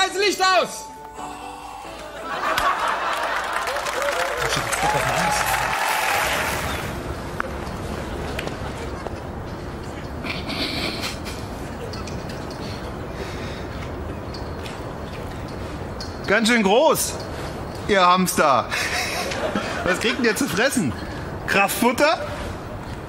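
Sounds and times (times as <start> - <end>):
music: 0.7 - 2.8
people laughing: 1.9 - 6.6, 18.7 - 21.0
street traffic noise: 1.9 - 23.0.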